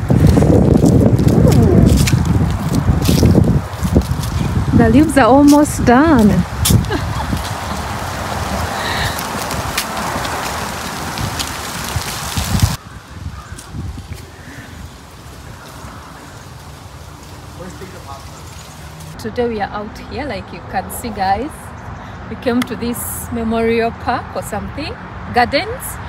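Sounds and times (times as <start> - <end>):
footsteps on dry leaves: 0.0 - 19.2.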